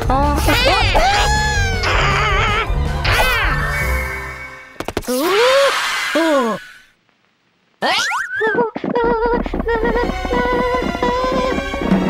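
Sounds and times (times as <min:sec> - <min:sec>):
music: 0:00.0 - 0:04.8, 0:09.8 - 0:12.0.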